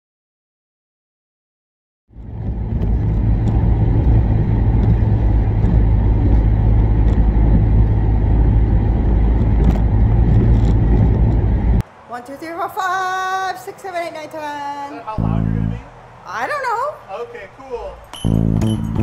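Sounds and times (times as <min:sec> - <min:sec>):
car engine and tyre rumble: 0:02.1 - 0:12.1, 0:15.2 - 0:19.0.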